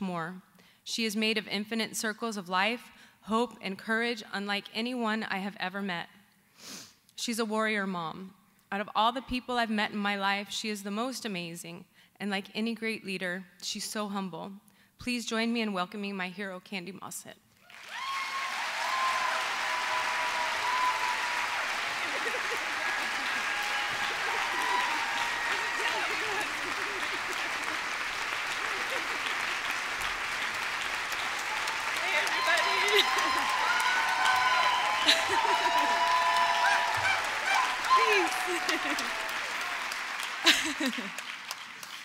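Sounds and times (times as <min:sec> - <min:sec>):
audience applauding: 0:17.6 - 0:42.0
crowd cheering and whooping: 0:17.7 - 0:41.2.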